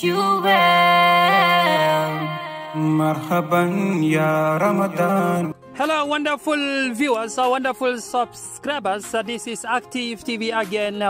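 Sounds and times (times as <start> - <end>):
man singing chant-like melody: 1.7 - 5.6.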